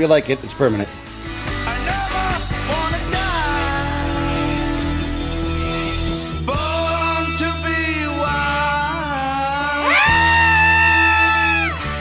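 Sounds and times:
rock music: 0:00.0 - 0:12.0
loud held vocal yell: 0:09.7 - 0:11.8.

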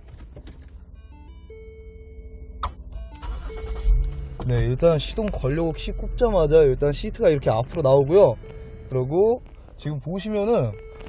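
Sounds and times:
car engine cranking and starting: 0:00.0 - 0:01.0, 0:02.6 - 0:11.0
electronic chime tones: 0:01.0 - 0:11.0.

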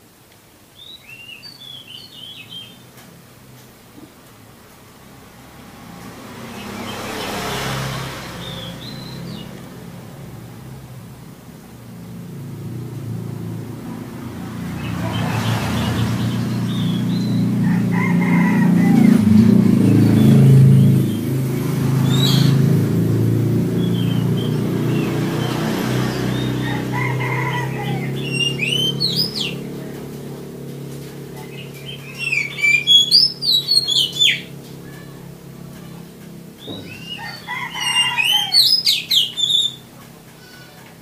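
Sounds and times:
low steady engine hum: 0:00.0 - 0:41.0
bird singing whistled phrases: 0:31.8 - 0:35.1, 0:36.6 - 0:39.8.

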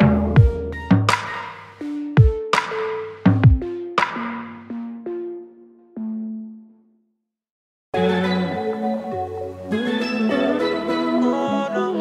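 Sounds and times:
background music with held chords: 0:00.0 - 0:07.0, 0:08.0 - 0:12.0.

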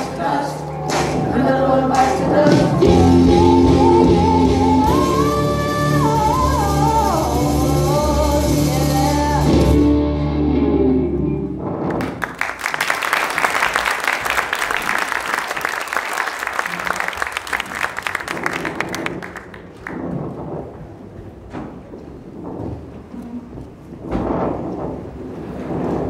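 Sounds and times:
audience applauding: 0:00.0 - 0:03.2, 0:11.9 - 0:20.2.

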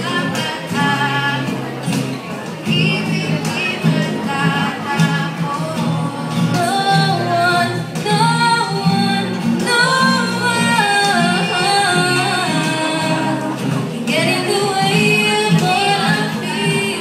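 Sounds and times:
women singing: 0:00.0 - 0:02.0, 0:02.6 - 0:17.0
acoustic guitars: 0:00.0 - 0:17.0.

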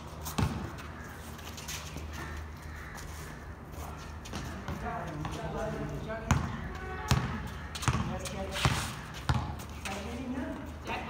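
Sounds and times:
basketball bouncing on hard court: 0:00.3 - 0:00.7, 0:06.3 - 0:09.6.

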